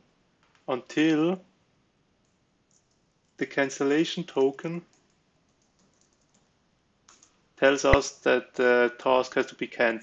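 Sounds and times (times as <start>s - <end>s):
faint keyboard typing: 0.4s - 0.7s, 2.2s - 8.1s.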